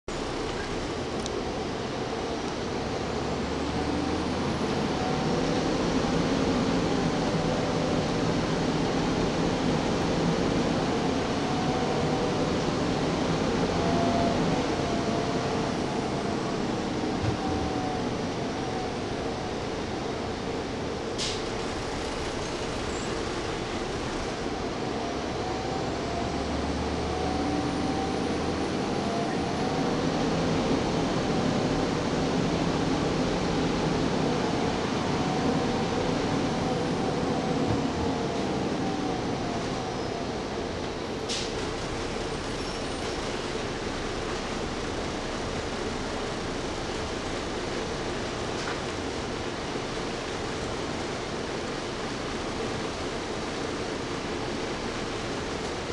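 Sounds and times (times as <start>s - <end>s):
bus engine: 0.0s - 55.9s.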